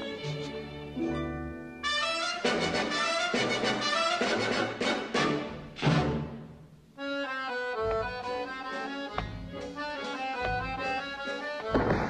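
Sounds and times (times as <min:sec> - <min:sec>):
orchestral film music with brass: 0:01.8 - 0:12.0.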